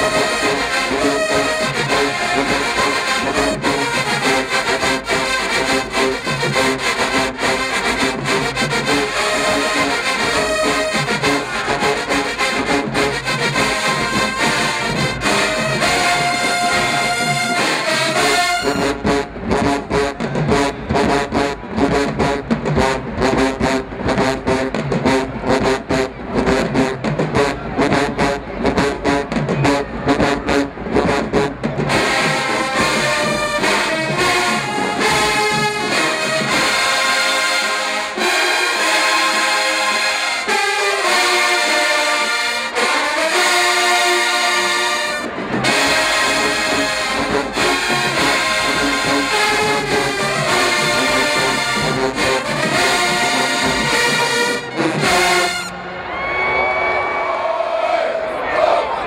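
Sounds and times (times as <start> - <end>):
low brass rhythmic line: 0.0 - 56.0
brass section loud chords: 0.0 - 56.1.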